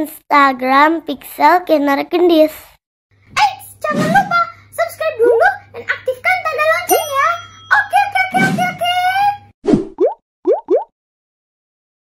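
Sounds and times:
rising bloop pop effects: 9.7s - 10.9s.

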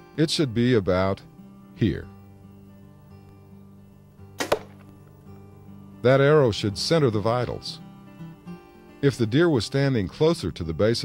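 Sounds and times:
soft acoustic guitar music: 0.0s - 11.0s
arrow hitting target: 4.4s - 4.9s.

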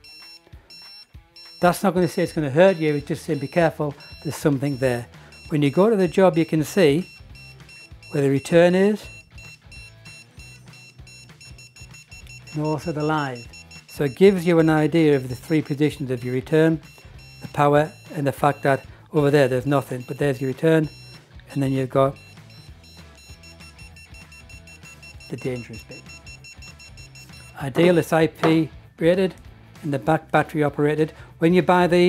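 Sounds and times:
voltage detector beeping rapidly: 0.0s - 28.2s
background music: 0.0s - 32.0s.

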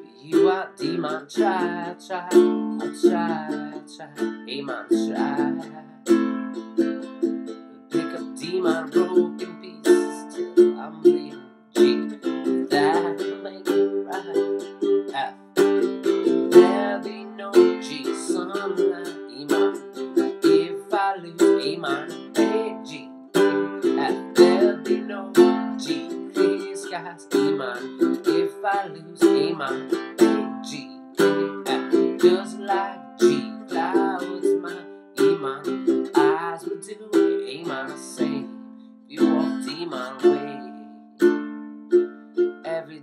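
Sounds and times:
ukulele strumming chords: 0.0s - 43.0s.

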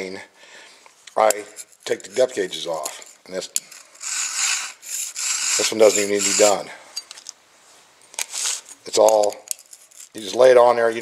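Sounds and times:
metal scrape: 1.4s - 7.1s, 8.2s - 8.8s, 9.6s - 10.2s.

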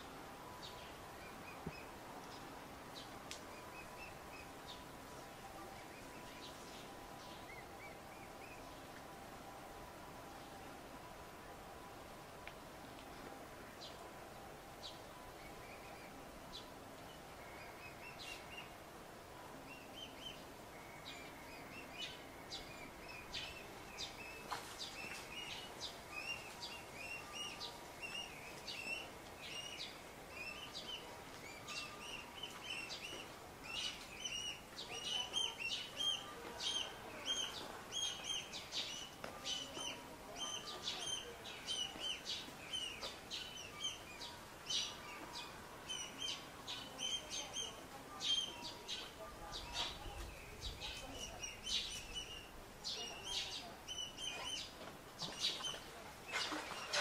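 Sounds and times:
cygnets peeping: 19.7s - 57.0s.

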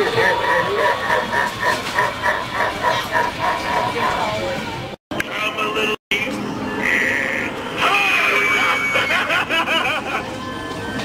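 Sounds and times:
recorded voice laughing: 0.0s - 4.2s, 8.3s - 10.4s.

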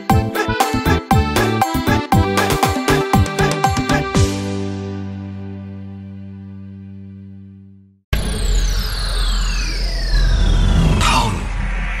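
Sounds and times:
loud whoosh: 8.2s - 12.0s
heavy deep rumble: 10.1s - 12.0s.

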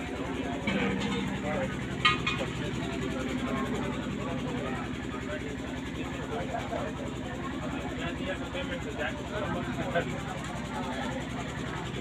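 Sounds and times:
crowd voices: 0.0s - 12.0s
low engine-like drone: 0.0s - 12.0s.

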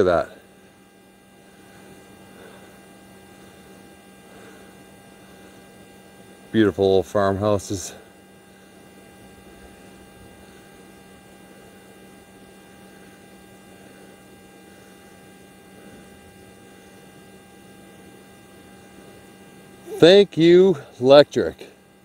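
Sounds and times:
faint electrical hum: 0.0s - 22.0s.

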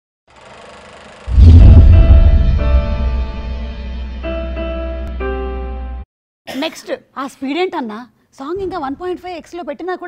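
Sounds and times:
deep rumbling bass hit: 1.3s - 4.2s.

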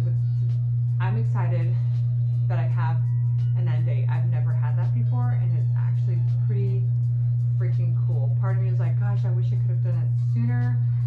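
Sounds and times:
woman talking: 0.0s - 0.3s, 1.0s - 7.0s, 7.6s - 11.0s
loud low-pitched hum: 0.0s - 11.0s.

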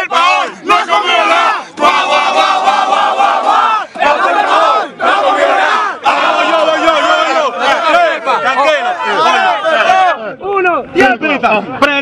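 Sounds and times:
young men shouting together: 0.0s - 10.4s.

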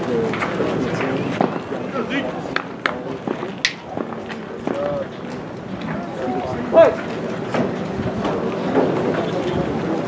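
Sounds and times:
distant voices: 0.0s - 10.0s
players and spectators calling out: 5.8s - 7.3s.

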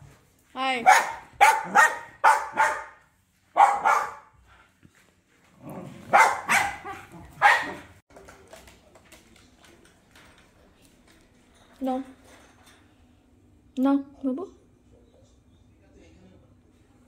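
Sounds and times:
small dog barking: 0.8s - 4.3s, 6.0s - 8.0s.

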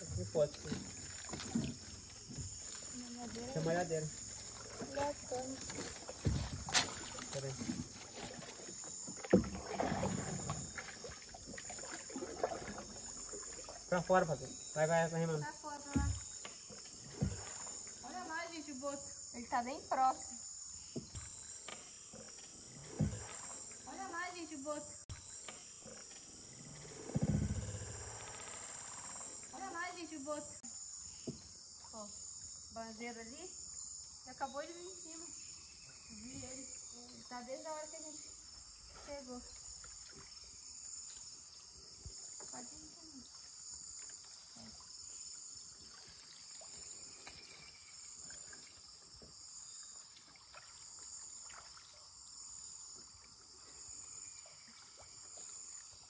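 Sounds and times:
insect chorus: 0.0s - 56.0s
water splash: 4.1s - 14.0s, 49.8s - 52.1s.

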